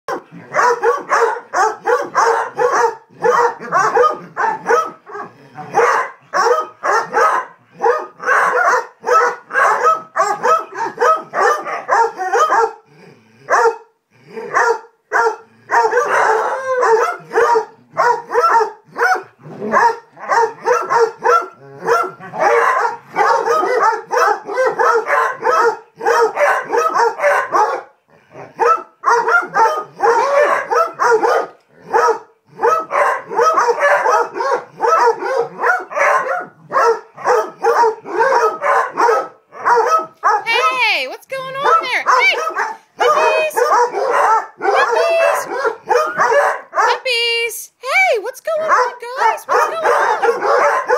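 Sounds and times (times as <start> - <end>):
dogs barking: 0.1 - 12.9, 13.5 - 47.2, 48.4 - 50.9.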